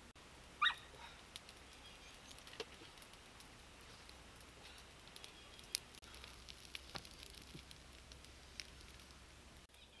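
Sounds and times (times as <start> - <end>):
dog yelping: 0.6 - 0.9.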